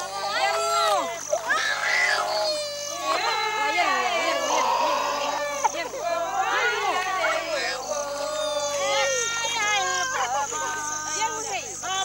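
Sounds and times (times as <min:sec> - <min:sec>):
people talking and calling: 0:00.0 - 0:12.0.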